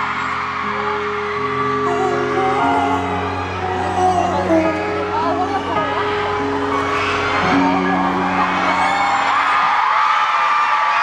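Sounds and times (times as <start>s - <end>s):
crowd screaming and cheering: 0.0s - 11.0s.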